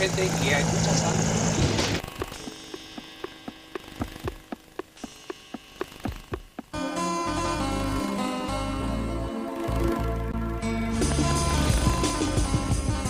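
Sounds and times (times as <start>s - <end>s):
watch ticking: 2.0s - 6.8s
music: 2.2s - 13.0s.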